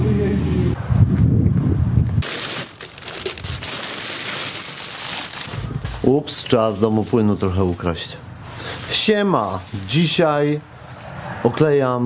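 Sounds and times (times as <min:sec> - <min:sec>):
wind buffeting microphone: 0:00.0 - 0:02.3
handling and rustling noise: 0:02.2 - 0:10.3.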